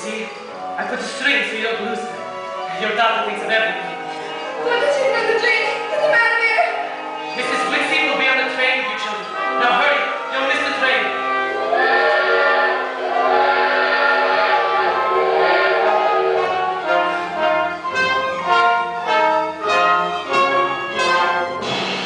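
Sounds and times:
theatre orchestra with brass and strings: 0.0 - 22.0.

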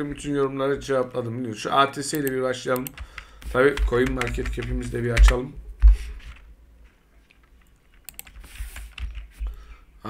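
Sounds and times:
computer keyboard typing: 2.2 - 5.4, 7.6 - 9.4.

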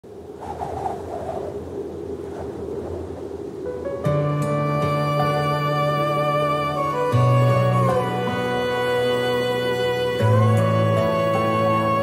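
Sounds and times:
soft ambient instrumental: 3.4 - 12.0
clear sustained notes: 3.7 - 12.0.

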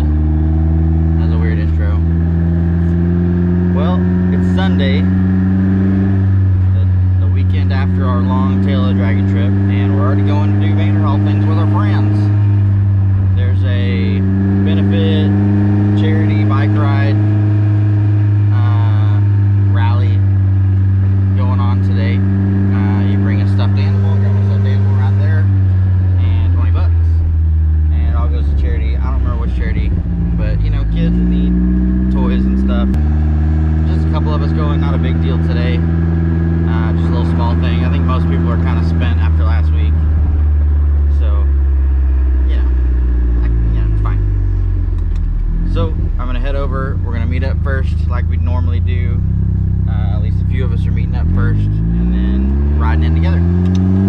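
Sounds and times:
car engine running: 0.0 - 54.0.

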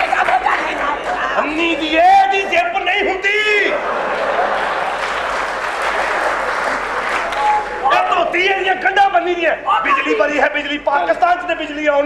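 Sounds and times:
audience applauding: 0.0 - 2.0, 3.7 - 8.4.

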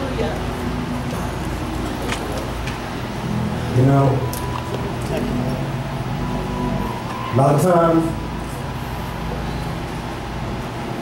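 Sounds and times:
crowd stirring in hall: 0.5 - 8.8.

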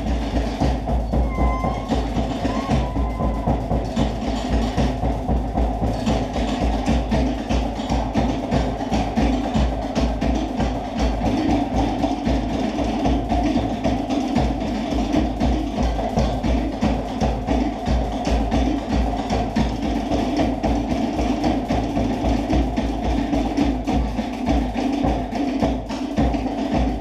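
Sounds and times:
deep drum beats: 0.0 - 27.0.

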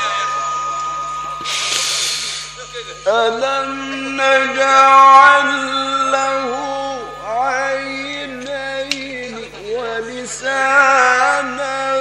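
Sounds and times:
deep breath in through microphone: 1.4 - 2.6
person chanting: 3.1 - 12.0.

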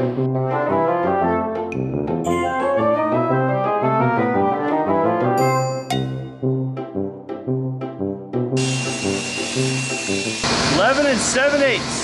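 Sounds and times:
music with plucked beat: 4.9 - 7.0
table saw cutting wood: 8.6 - 12.0.

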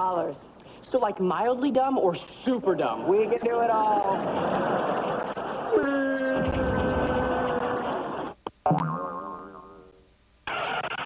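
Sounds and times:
cartoon boing sound effect: 8.6 - 10.0.

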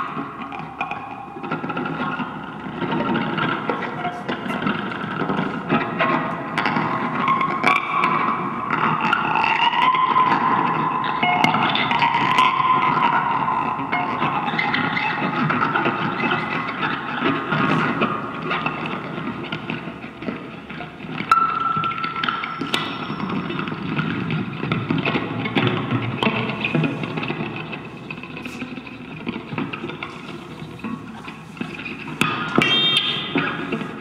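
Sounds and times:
improvised guitar plucking: 0.0 - 34.0
held high guitar tone: 6.3 - 16.5, 27.7 - 34.0.

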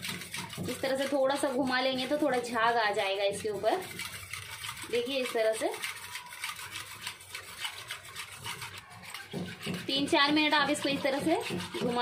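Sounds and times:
whisk swishing liquid in bowl: 0.0 - 12.0.

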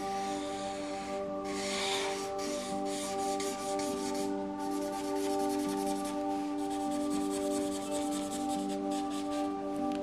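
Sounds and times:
background music: 0.0 - 10.0
marker rubbing on paper: 0.1 - 9.6.

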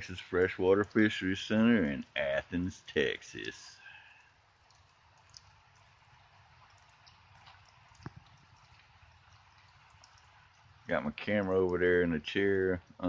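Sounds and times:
light rain hiss: 0.0 - 13.0
soft ticks of raindrops: 0.0 - 13.0.

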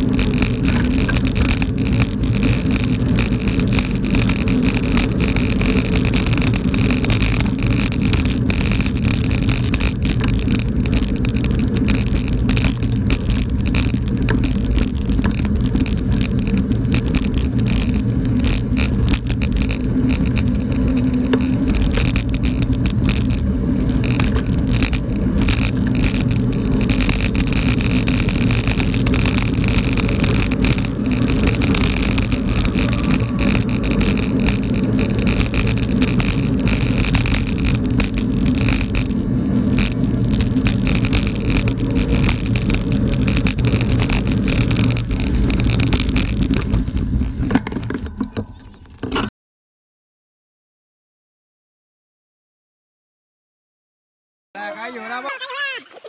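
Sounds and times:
bike clicks and rattles: 0.0 - 49.3
wind rumble on microphone: 0.0 - 49.3
tyres hissing on loose grit: 25.6 - 39.0.

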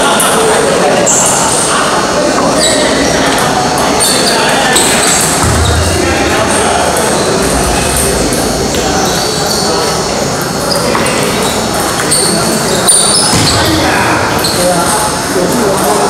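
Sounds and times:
babble of voices: 0.0 - 16.0.

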